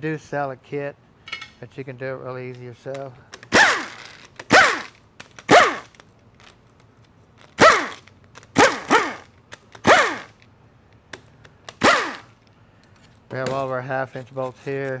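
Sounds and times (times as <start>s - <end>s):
impact wrench bursts: 3.3s - 6.0s, 7.4s - 10.4s, 11.2s - 12.4s.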